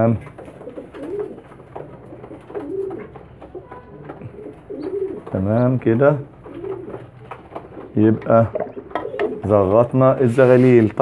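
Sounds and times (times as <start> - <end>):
pigeons cooing: 0.0 - 10.8
clicks and rustles of handling: 0.2 - 9.4.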